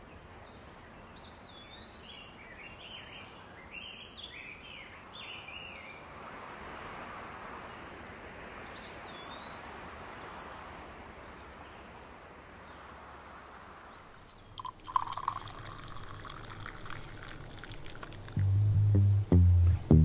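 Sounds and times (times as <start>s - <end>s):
steady hiss: 13.5s - 20.0s.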